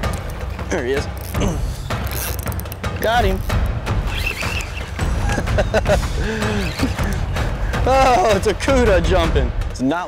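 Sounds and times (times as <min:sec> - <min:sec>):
fishing reel winding and clicking: 0:01.0 - 0:04.8.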